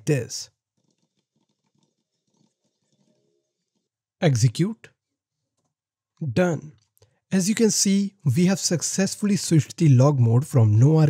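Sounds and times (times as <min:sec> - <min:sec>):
faint keyboard clicks: 0:00.7 - 0:03.9, 0:05.4 - 0:06.2.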